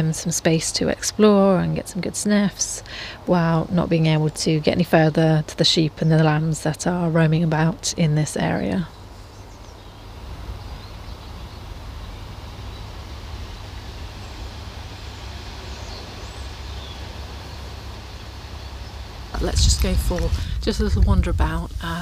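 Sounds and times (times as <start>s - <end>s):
wind on microphone: 19.3s - 22.0s.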